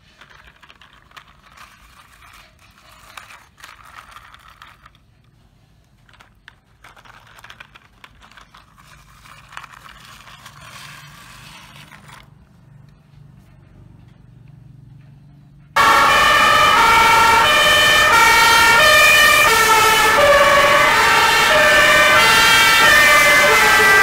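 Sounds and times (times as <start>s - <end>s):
plastic wheels scraping over gravel: 0.0s - 12.4s.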